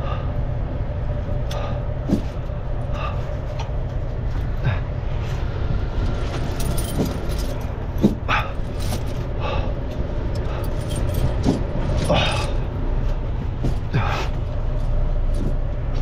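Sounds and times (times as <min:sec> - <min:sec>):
truck engine low rumble: 0:00.0 - 0:16.0.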